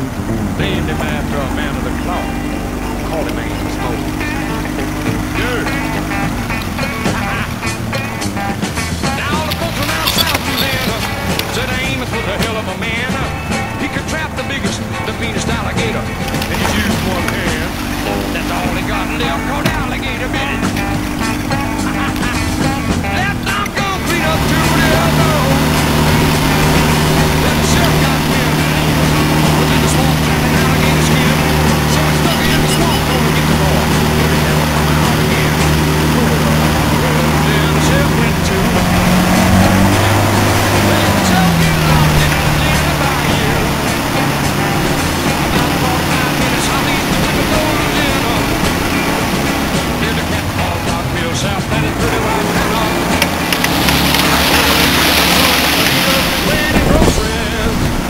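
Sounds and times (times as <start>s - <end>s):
boat motor running: 0.0s - 58.0s
water noise: 0.0s - 58.0s
wind noise: 52.6s - 58.0s.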